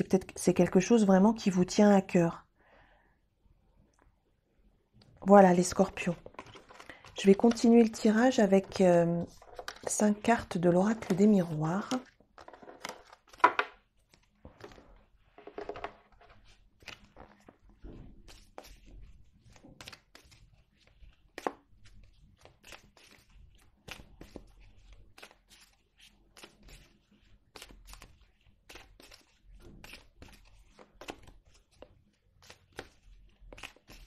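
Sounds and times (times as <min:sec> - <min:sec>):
cards shuffled by hand: 0:05.9 - 0:34.0.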